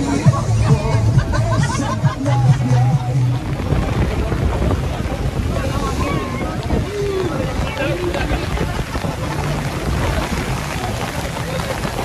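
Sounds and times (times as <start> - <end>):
choppy sea rushing: 0.0 - 12.0
wind buffeting microphone: 0.0 - 12.0.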